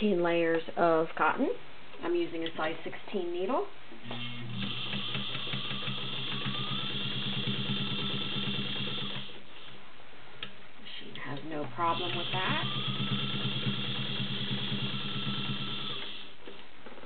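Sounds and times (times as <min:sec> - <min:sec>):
sewing machine stitching: 0:04.1 - 0:09.4, 0:11.8 - 0:16.3.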